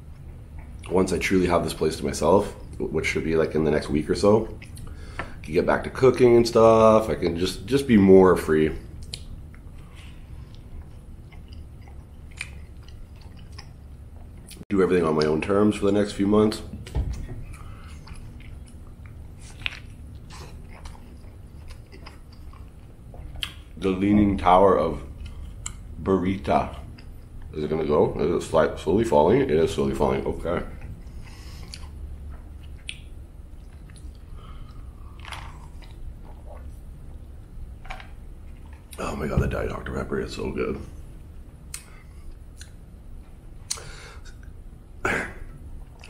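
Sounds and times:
person chewing food: 4.6 - 5.5, 8.9 - 14.6, 16.8 - 23.8, 25.0 - 26.0, 30.7 - 39.0
wet mouth clicks: 42.6 - 42.8, 43.7 - 44.5.

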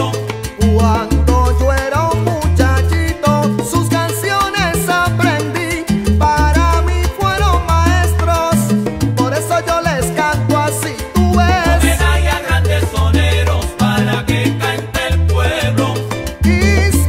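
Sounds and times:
salsa band instrumental: 0.0 - 17.0.

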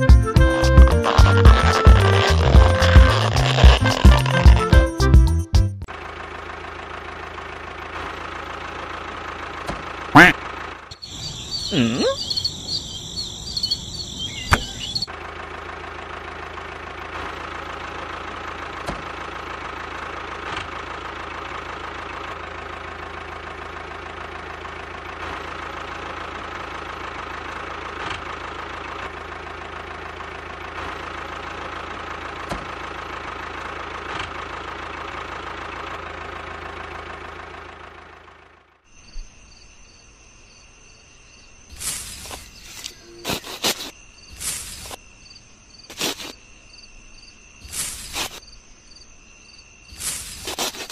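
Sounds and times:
toy motor droning: 0.8 - 4.8
crickets chirping: 10.9 - 15.1, 38.9 - 50.9.

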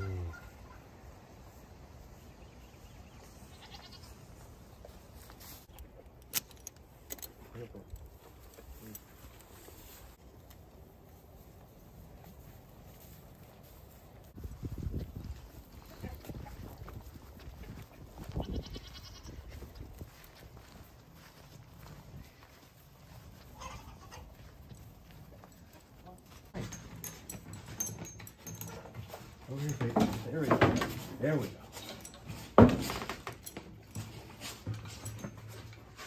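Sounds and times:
cattle calling: 0.0 - 1.0.

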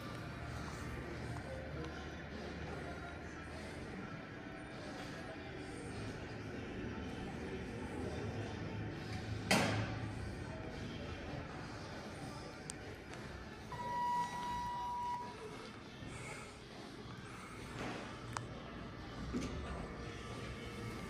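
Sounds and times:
elevator beep: 13.7 - 15.5.

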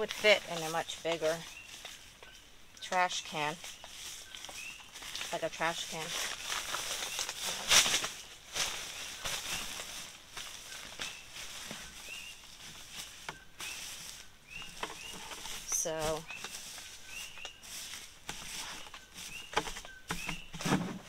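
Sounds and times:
plastic trash bag rustling: 4.0 - 19.8.

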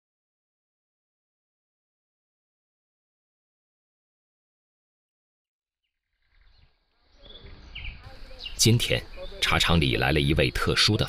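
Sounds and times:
high bird chirps: 5.8 - 10.1
low background noise: 6.8 - 11.0.

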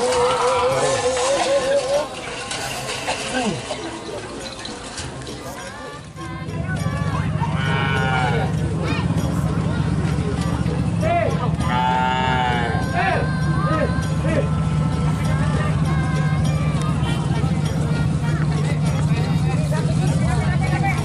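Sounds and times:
people shouting and calling: 0.0 - 3.7, 5.7 - 21.0.

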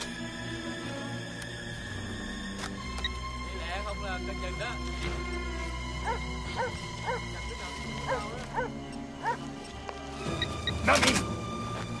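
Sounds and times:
tense film music: 0.0 - 12.0
short pitched yelping calls: 10.3 - 10.8.

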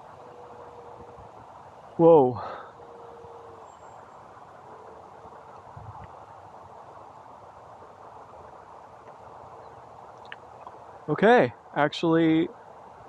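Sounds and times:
outdoor hiss: 0.0 - 13.0.

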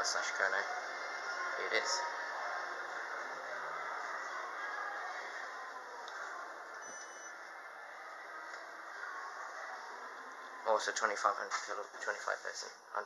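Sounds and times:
faint high beep: 6.8 - 7.5.

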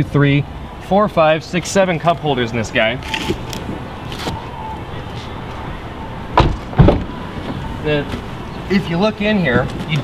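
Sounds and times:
car door thumping shut: 6.3 - 8.3.

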